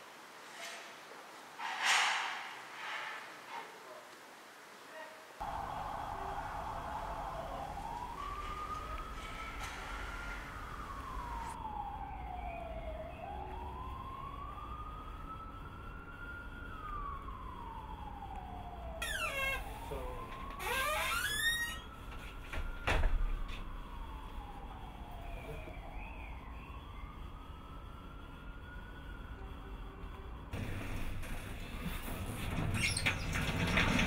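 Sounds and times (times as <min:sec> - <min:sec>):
siren wailing: 0:05.4 - 0:32.0.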